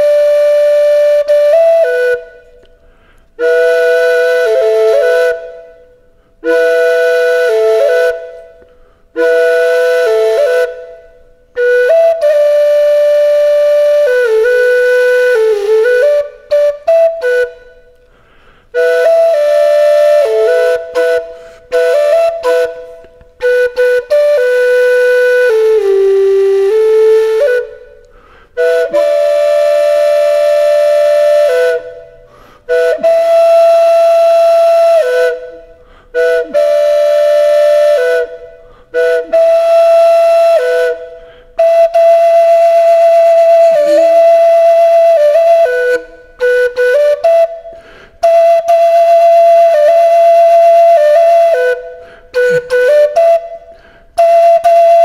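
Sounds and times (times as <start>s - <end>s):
solo flute melody: 0.0s - 55.0s.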